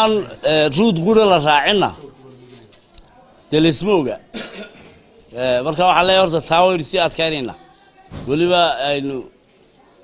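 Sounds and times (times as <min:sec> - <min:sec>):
man speaking: 0:00.0 - 0:02.8, 0:03.5 - 0:04.2, 0:05.3 - 0:07.6, 0:08.3 - 0:09.3
man coughing: 0:04.3 - 0:05.0.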